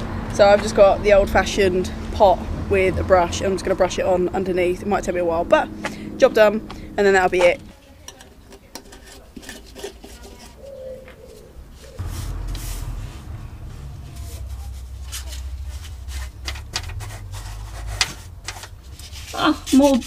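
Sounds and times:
low steady rumble: 0:00.0 - 0:07.7, 0:12.0 - 0:19.7
brush strokes scratching: 0:11.8 - 0:20.0.

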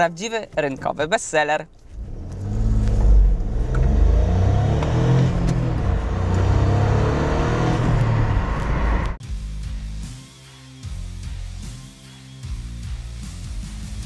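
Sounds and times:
car engine accelerating: 0:01.8 - 0:09.2.

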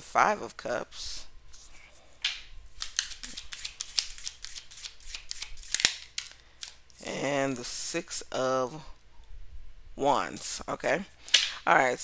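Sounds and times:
playing cards clicking and snapping: 0:02.2 - 0:06.8.

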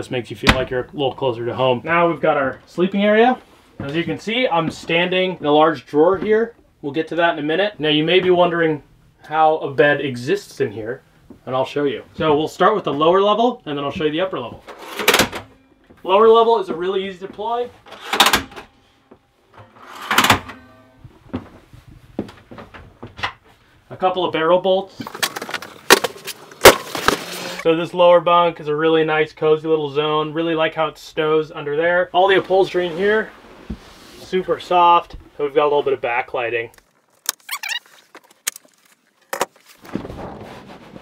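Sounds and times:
latch clicks: 0:14.7 - 0:15.5, 0:17.9 - 0:18.7
drawer sliding on runners: 0:19.6 - 0:20.5
rustling sliding noise: 0:19.6 - 0:20.7, 0:25.0 - 0:27.7, 0:32.3 - 0:34.7, 0:37.0 - 0:41.0
brief squeak: 0:37.4 - 0:37.8.

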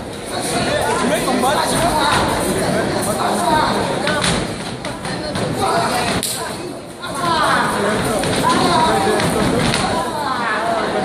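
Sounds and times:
audience voices: 0:00.0 - 0:11.0.

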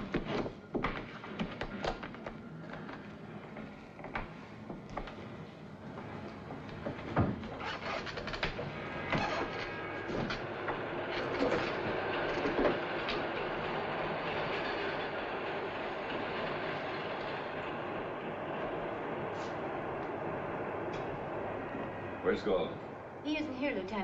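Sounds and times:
steady rushing rumble: 0:08.3 - 0:24.0.

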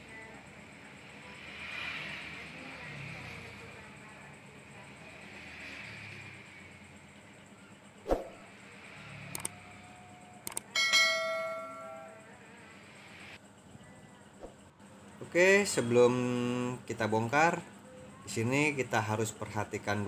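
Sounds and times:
quick clicks: 0:09.3 - 0:09.6, 0:10.4 - 0:10.7
bell chime: 0:10.7 - 0:12.2.

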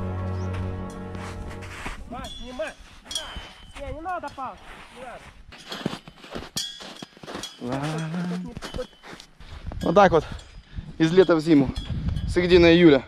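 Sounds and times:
boots stepping on packed snow: 0:00.0 - 0:09.3.

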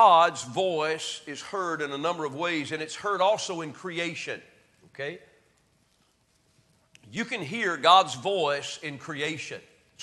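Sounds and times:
man speaking: 0:00.0 - 0:05.4, 0:07.0 - 0:09.7.

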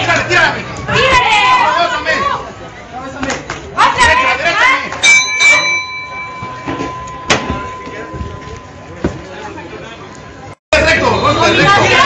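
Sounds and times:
boxing ring bell ringing: 0:05.0 - 0:09.0.

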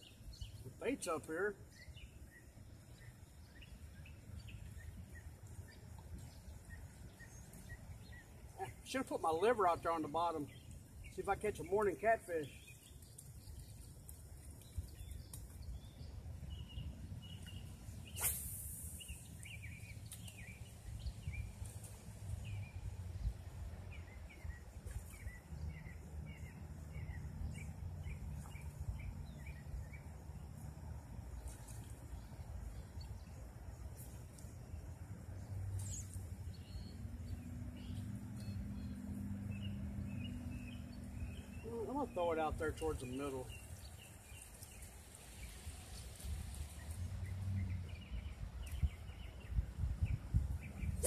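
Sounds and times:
small birds chirping: 0:00.0 - 0:51.0.

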